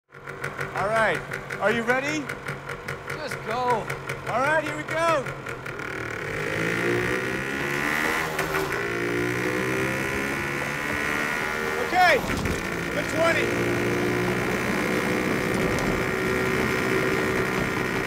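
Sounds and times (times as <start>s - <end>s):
car engine accelerating: 5.6s - 18.0s.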